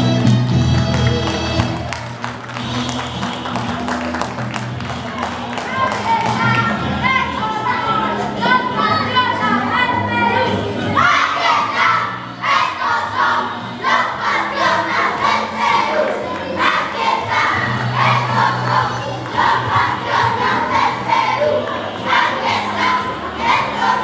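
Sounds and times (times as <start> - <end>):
children shouting and chanting: 5.6 - 24.0.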